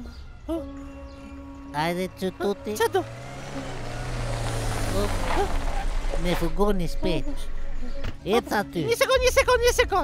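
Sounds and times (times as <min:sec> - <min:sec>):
van engine approaching: 0:01.4 - 0:08.1.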